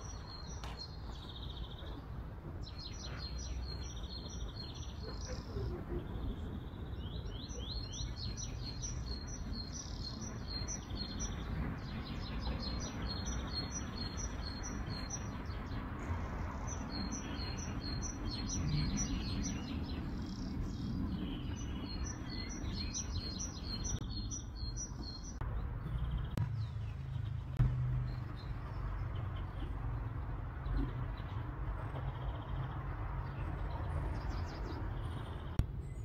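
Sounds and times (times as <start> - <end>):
songbirds chirping: 0.0 - 36.0.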